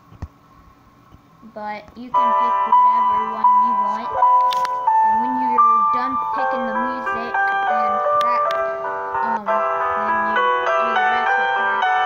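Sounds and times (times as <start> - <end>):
chiming electronic melody: 2.2 - 12.0.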